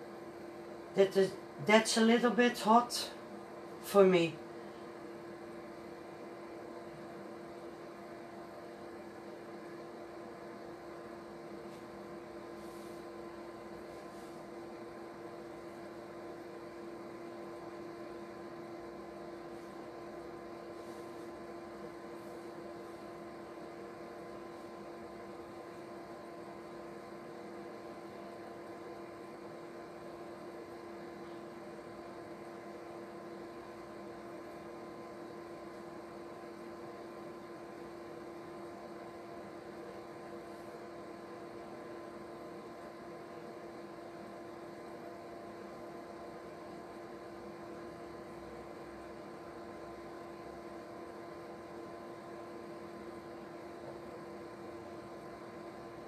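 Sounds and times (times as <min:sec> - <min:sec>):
steady multi-tone hum: 0:00.0 - 0:56.0.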